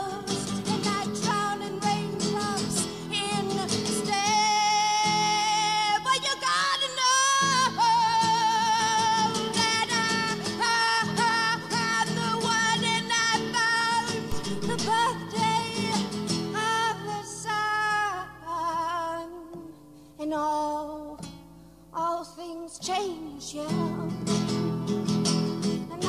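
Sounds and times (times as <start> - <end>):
woman singing with vibrato: 0.0 - 21.3, 21.9 - 24.8, 25.8 - 26.0
acoustic guitar: 0.0 - 26.0.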